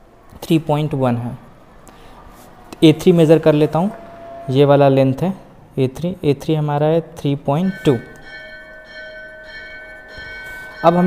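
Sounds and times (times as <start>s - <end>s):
bell-like ringing: 7.5s - 11.0s.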